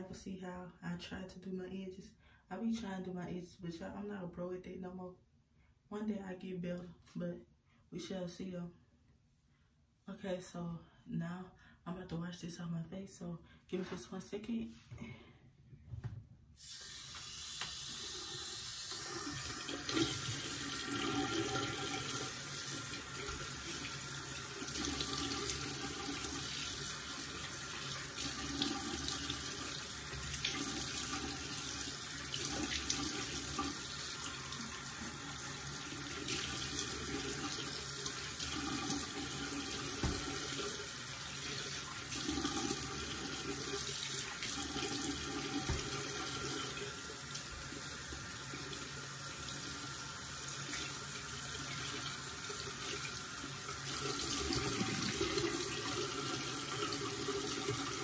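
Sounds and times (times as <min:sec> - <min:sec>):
sink tap running: 0:16.6 - 0:58.0.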